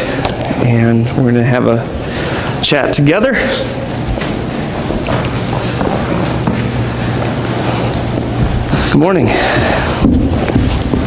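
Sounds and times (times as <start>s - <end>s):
low even hum: 0.0s - 11.0s
steady rushing room noise: 0.0s - 11.0s
man speaking: 0.6s - 2.0s, 2.6s - 3.9s, 8.9s - 9.8s.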